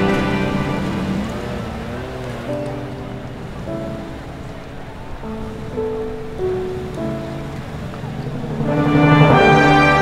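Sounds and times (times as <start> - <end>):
film score sustained notes: 0.0 - 10.0.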